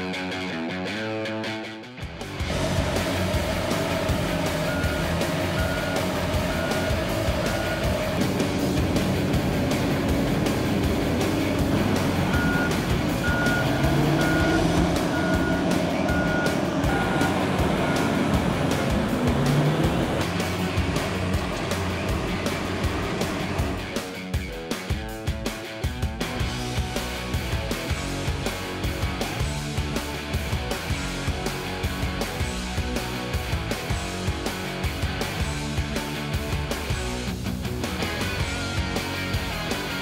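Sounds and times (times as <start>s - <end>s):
heavy diesel machinery drone: 2.2s - 24.4s
reversing alarm beeping: 3.1s - 8.2s, 12.1s - 18.9s.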